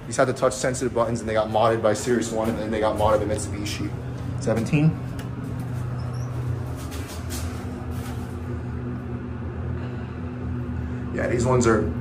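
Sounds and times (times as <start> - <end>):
elevator car drone: 0.0 - 12.0
low hum: 0.0 - 12.0.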